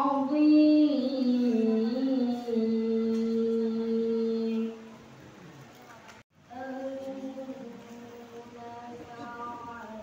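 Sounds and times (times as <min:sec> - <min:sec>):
amplified melodic recitation: 0:00.0 - 0:05.0, 0:06.5 - 0:10.0.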